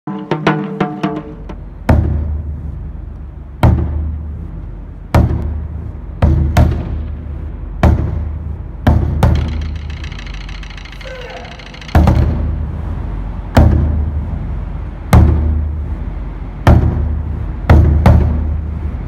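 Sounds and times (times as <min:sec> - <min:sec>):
taiko drums booming: 0:00.1 - 0:02.6, 0:03.6 - 0:04.4, 0:05.1 - 0:09.9, 0:11.8 - 0:12.6, 0:13.5 - 0:14.1, 0:15.1 - 0:15.8, 0:16.6 - 0:18.6.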